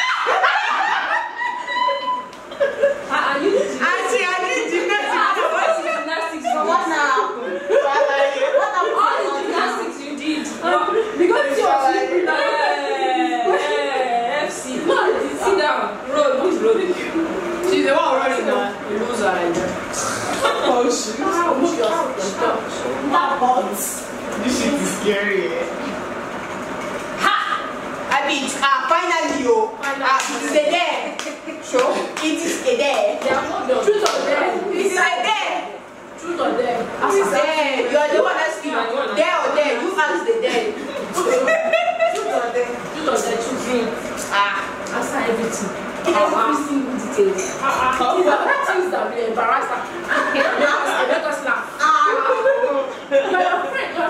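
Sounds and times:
women laughing: 0:00.0 - 0:03.8, 0:04.6 - 0:09.8, 0:40.3 - 0:42.6, 0:49.9 - 0:51.2, 0:52.0 - 0:54.0.

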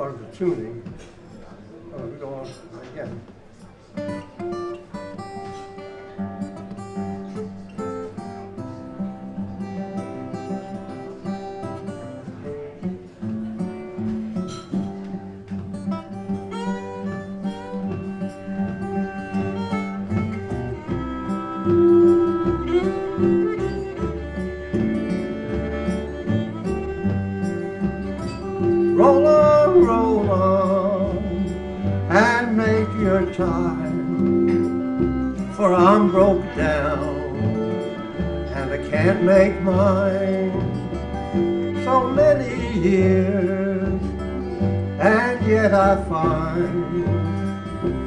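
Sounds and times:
string band playing: 0:01.9 - 0:48.0.

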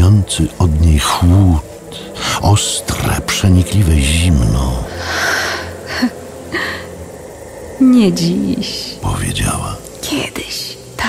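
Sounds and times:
person speaking: 0:00.0 - 0:05.0, 0:07.8 - 0:09.8
low steady background noise: 0:00.0 - 0:11.0.

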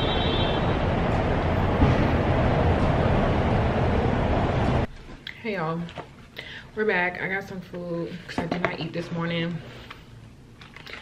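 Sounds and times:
city street traffic rumble: 0:00.0 - 0:04.9.

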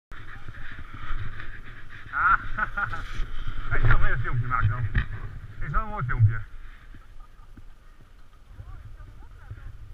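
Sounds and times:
faint voices: 0:00.1 - 0:09.9
muffled wind on microphone: 0:00.1 - 0:09.9.

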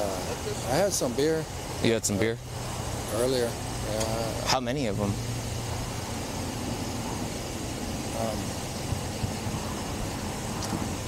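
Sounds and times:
road traffic noise: 0:00.0 - 0:11.0
vehicle engine idling: 0:00.0 - 0:11.0.

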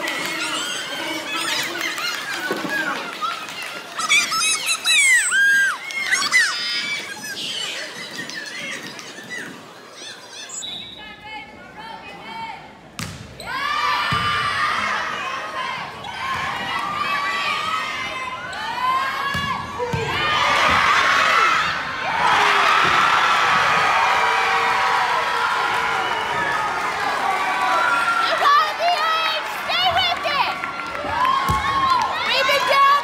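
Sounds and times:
crowd cheering: 0:00.0 - 0:10.6, 0:13.5 - 0:33.0
volleyball smack: 0:13.0 - 0:13.3.

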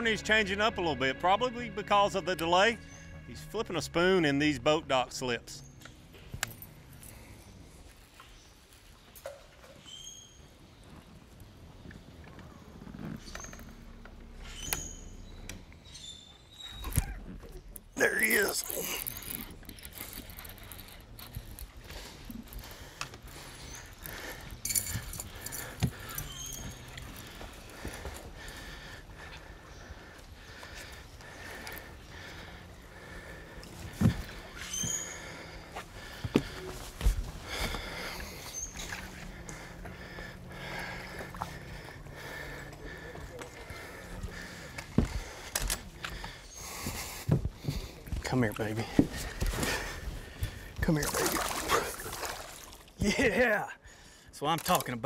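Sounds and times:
man laughing: 0:53.0 - 0:53.6.

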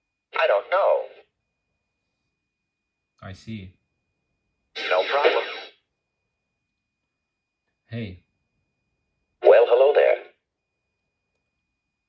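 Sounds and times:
synthetic voice through small speaker: 0:00.4 - 0:01.2, 0:04.8 - 0:05.7, 0:09.4 - 0:10.3.

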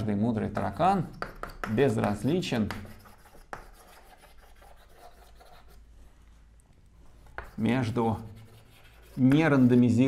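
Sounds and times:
chalk scratching on chalkboard: 0:00.4 - 0:05.9, 0:07.0 - 0:10.0.

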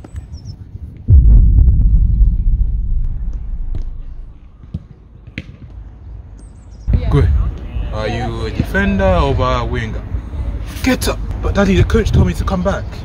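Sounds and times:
wind buffeting microphone: 0:00.0 - 0:04.6.

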